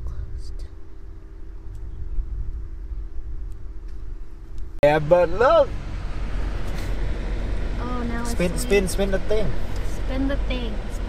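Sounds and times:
car rumble inside cabin: 0:00.0 - 0:11.0
person speaking: 0:07.8 - 0:10.5.

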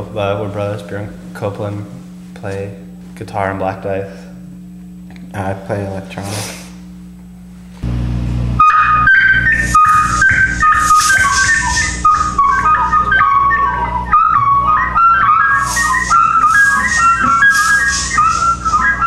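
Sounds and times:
whistle-like electronic melody: 0:08.6 - 0:19.0.

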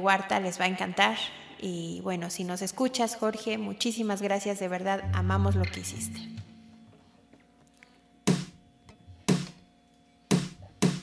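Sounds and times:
count-in clicks: 0:05.0 - 0:06.9.

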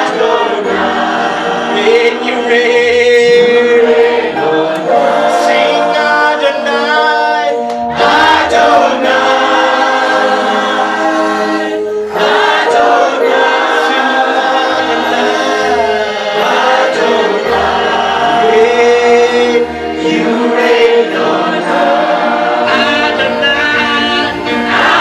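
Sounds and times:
backing vocal group singing: 0:00.0 - 0:25.0
man singing lead: 0:01.7 - 0:09.4, 0:12.2 - 0:25.0.

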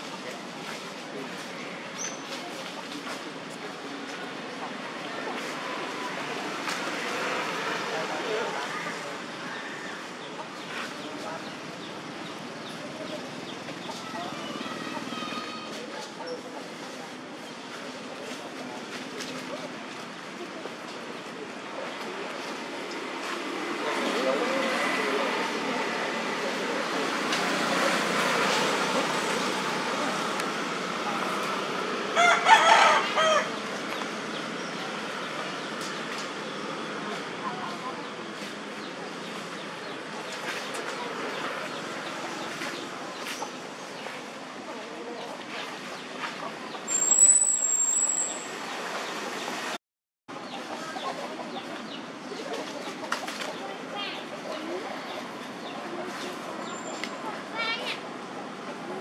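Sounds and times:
steady background noise: 0:00.0 - 0:59.0.

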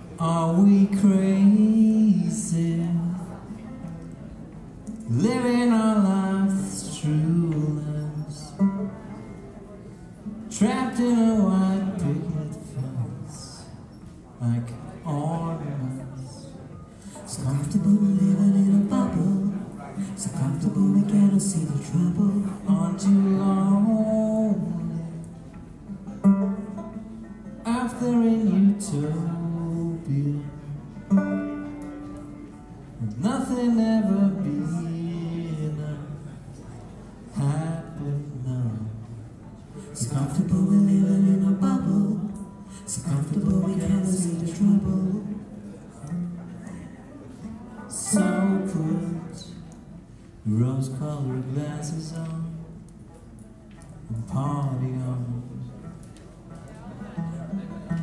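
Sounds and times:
quiet band accompaniment: 0:00.0 - 0:58.0
banjo plucking: 0:17.5 - 0:32.9, 0:53.6 - 0:58.0
person singing: 0:47.9 - 0:49.6.

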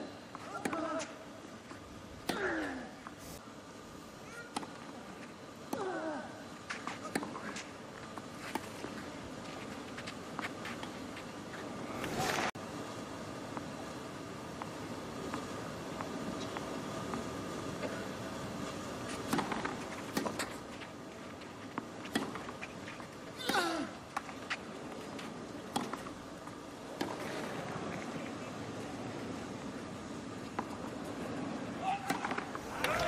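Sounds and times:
racket striking tennis ball: 0:19.2 - 0:20.6, 0:31.8 - 0:33.0.

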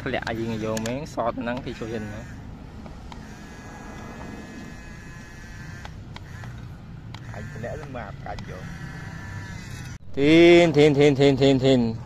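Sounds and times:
small electric gear motor whining: 0:03.1 - 0:06.6.

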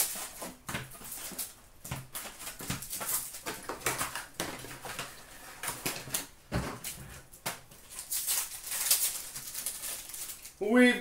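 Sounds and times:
wrappers crinkling and tearing: 0:00.0 - 0:06.3, 0:07.8 - 0:11.0.

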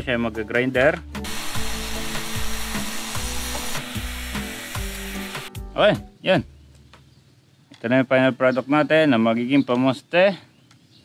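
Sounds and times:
angle grinder cutting pipe: 0:01.2 - 0:05.5.

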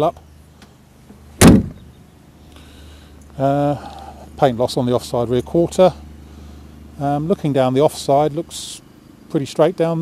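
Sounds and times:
car tailgate slammed shut: 0:01.4 - 0:01.9.

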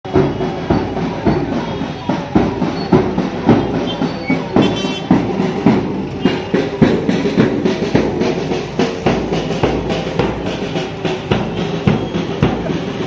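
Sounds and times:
steady drumbeat: 0:00.0 - 0:13.0.

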